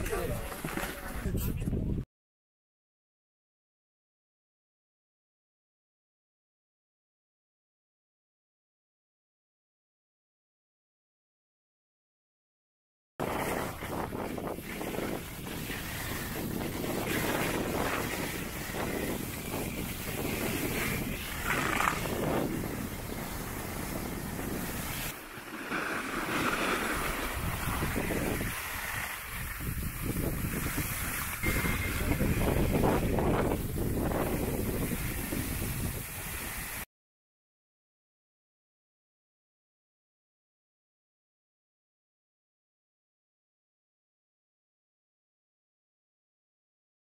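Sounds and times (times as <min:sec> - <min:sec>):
wind buffeting microphone: 0:00.0 - 0:02.0, 0:13.2 - 0:25.2, 0:26.0 - 0:36.8.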